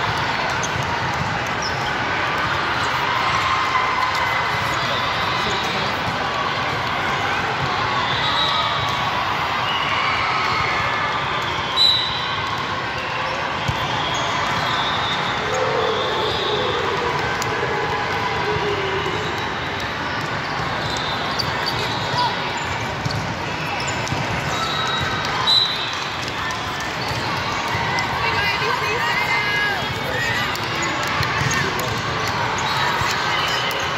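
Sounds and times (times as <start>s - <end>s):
murmur of many voices: 0.0s - 33.9s.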